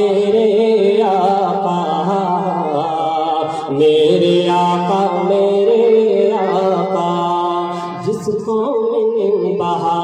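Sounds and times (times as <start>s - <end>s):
man singing into microphone: 0.0s - 10.0s.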